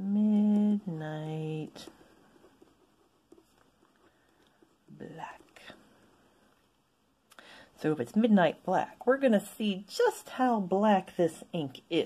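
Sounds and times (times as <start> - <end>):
pen nib scratching on paper: 0.3 - 6.1.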